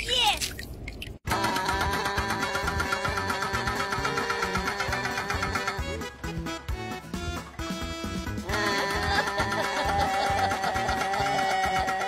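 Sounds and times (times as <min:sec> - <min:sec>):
hydraulic breaker hammering asphalt: 0:01.4 - 0:05.8.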